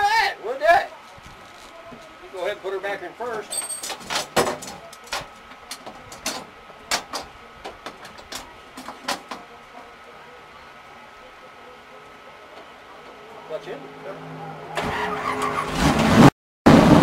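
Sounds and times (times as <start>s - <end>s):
sharp clicks and knocks: 3.4s - 9.9s.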